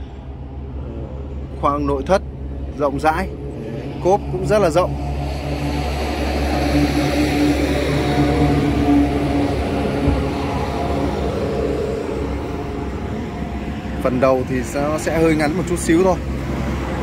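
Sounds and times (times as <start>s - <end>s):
motor engine drone: 0.0s - 17.0s.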